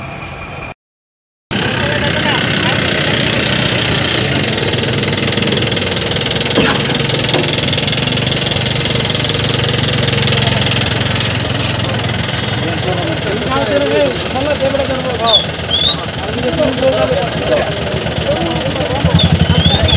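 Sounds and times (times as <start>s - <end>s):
crowd voices: 1.5s - 19.9s
vehicle engine idling: 1.5s - 19.9s.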